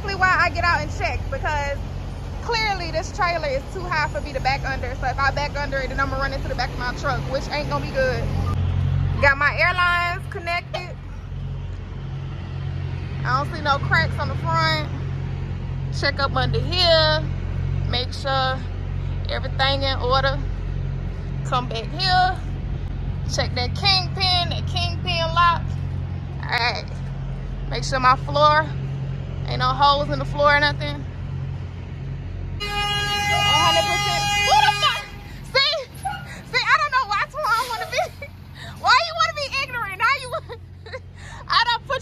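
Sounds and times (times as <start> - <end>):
long truck horn blast: 32.6 - 35.4.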